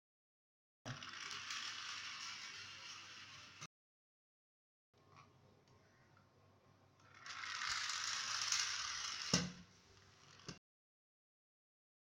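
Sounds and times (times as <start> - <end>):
toy car wheels whirring on tile: 0.9 - 3.7, 7.0 - 10.6.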